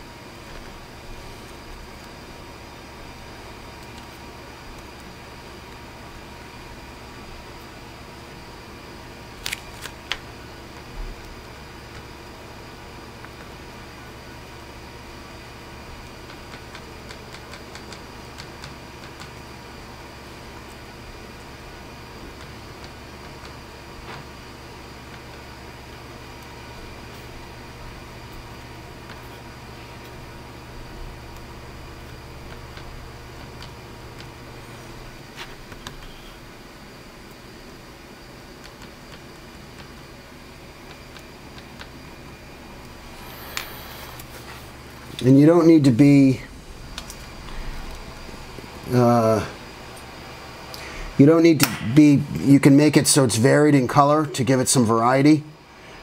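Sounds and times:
low room hum: 0.0 - 56.0
brush ticking on plastic: 16.2 - 19.4.

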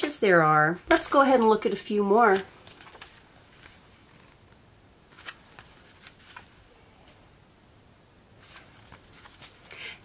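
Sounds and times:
paper pages turning: 0.9 - 6.6, 8.4 - 9.8.

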